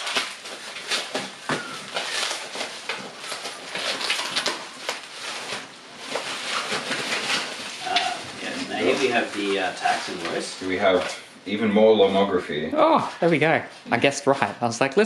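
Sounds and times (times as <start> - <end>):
bubble wrap crinkling: 0.0 - 11.3.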